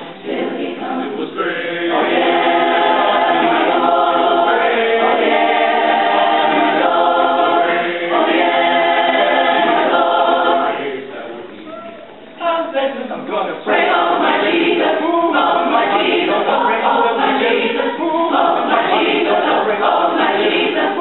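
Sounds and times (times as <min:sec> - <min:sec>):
mixed choir singing: 0:00.0 - 0:11.3, 0:13.6 - 0:21.0.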